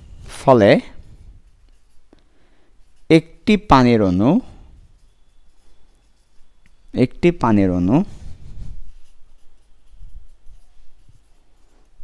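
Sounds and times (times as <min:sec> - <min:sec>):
pen writing: 0:01.5 - 0:02.2, 0:05.0 - 0:06.9, 0:08.1 - 0:12.0.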